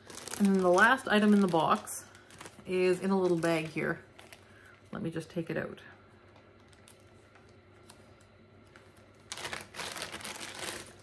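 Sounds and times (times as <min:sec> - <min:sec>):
small bag rustling: 0:00.0 - 0:04.5, 0:08.6 - 0:11.0.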